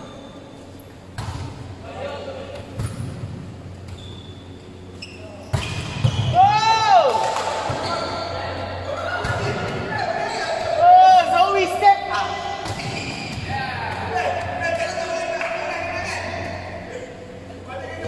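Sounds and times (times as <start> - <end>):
players shouting: 6.2 - 16.2.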